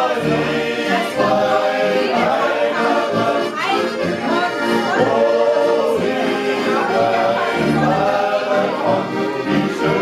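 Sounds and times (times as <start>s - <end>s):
men singing together: 0.0s - 10.0s.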